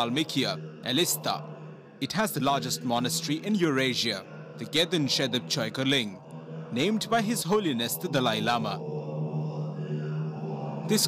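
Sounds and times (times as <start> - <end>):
monks chanting in unison: 0.0 - 11.0.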